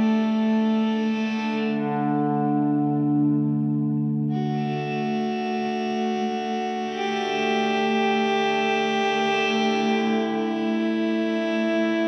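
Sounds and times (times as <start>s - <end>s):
electric guitar sustained chords: 0.0s - 12.0s.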